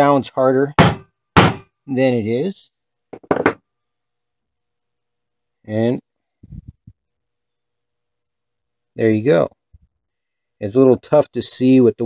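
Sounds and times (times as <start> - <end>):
hammer set down on wooden workbench: 3.1 - 3.6.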